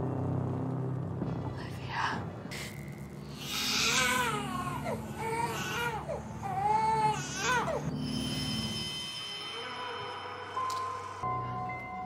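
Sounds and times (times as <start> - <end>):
film score music: 0.0 - 12.0.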